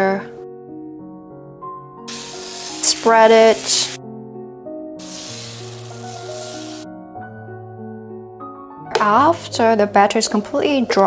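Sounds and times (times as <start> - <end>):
music of sustained notes: 0.2 - 11.0
batter sizzling on a hot pan: 2.1 - 4.0, 5.0 - 6.8.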